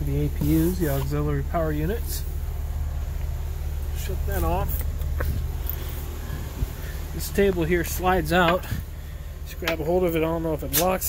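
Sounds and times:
engine idling: 0:00.0 - 0:11.0.

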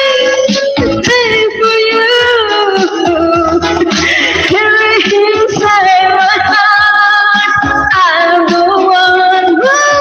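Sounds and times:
backing music: 0:00.0 - 0:10.0
woman singing: 0:00.0 - 0:10.0.

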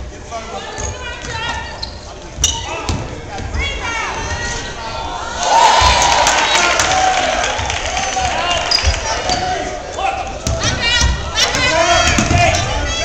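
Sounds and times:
spectators shouting and cheering: 0:05.0 - 0:13.0.

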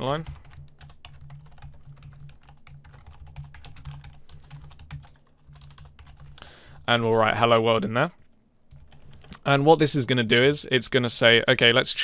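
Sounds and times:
keyboard typing: 0:00.0 - 0:06.9, 0:08.2 - 0:09.5.

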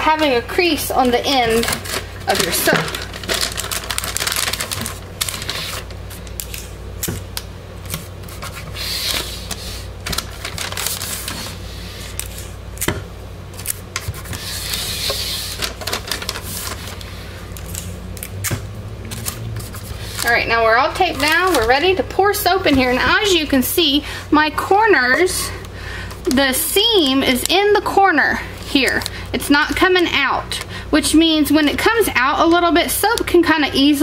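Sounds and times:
low steady hum: 0:00.0 - 0:34.0
paper crinkling and rustling: 0:01.0 - 0:07.2, 0:07.8 - 0:12.6, 0:13.6 - 0:18.4, 0:19.1 - 0:22.0.

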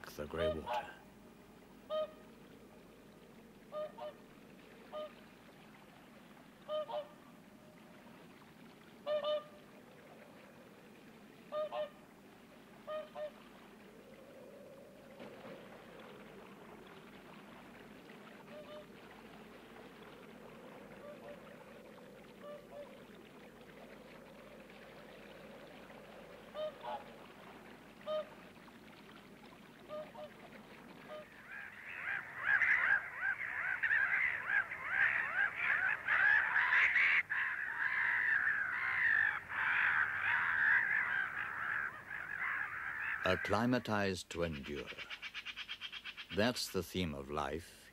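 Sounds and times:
swans honking: 0:00.3 - 0:01.0, 0:01.9 - 0:02.3, 0:03.7 - 0:04.2, 0:04.8 - 0:05.2, 0:06.6 - 0:07.3, 0:09.0 - 0:09.6, 0:11.5 - 0:12.1, 0:12.8 - 0:13.7, 0:18.4 - 0:23.1, 0:26.4 - 0:27.3, 0:27.9 - 0:28.5, 0:29.8 - 0:45.2.

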